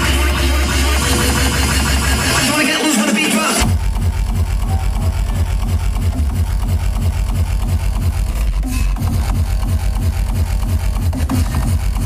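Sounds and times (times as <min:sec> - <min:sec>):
fast heavy kick drum beat: 0:00.0 - 0:12.0
industrial hardcore music: 0:00.0 - 0:12.0.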